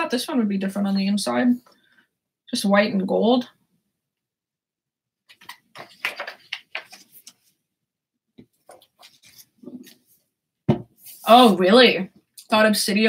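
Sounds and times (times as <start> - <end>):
book rustling and clicking: 5.3 - 7.6, 8.4 - 10.1.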